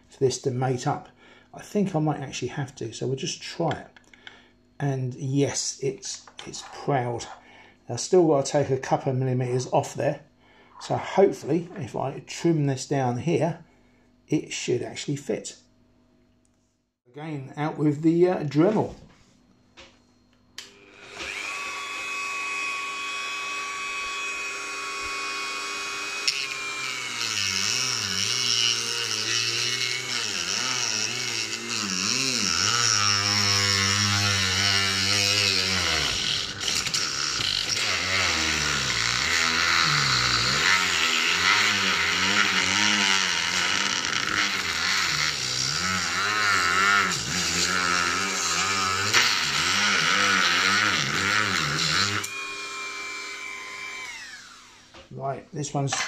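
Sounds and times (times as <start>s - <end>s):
rotary tool whining: 20.6s - 55.0s.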